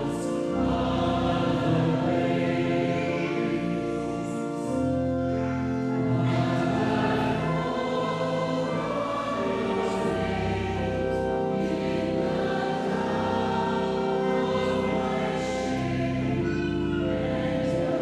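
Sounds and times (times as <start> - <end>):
church choir singing a hymn: 0.0 - 18.0.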